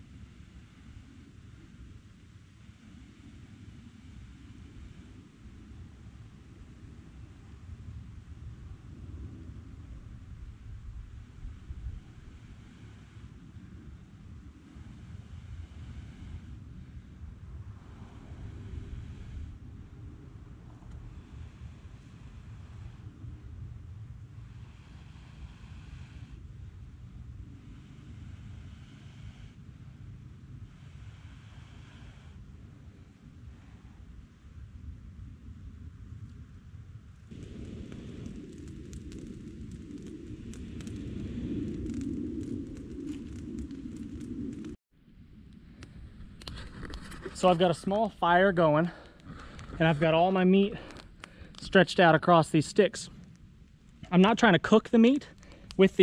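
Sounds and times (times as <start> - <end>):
fire crackling: 0.0 - 56.0
wind rumbling on microphone: 0.0 - 56.0.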